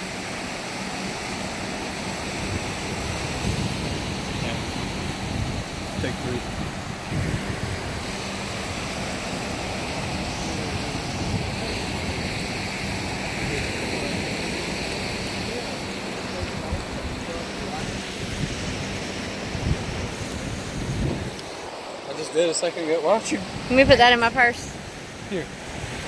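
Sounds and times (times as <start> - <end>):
wind buffeting microphone: 0.0 - 21.8, 23.1 - 26.0
ocean surf washing onto beach: 0.0 - 26.0.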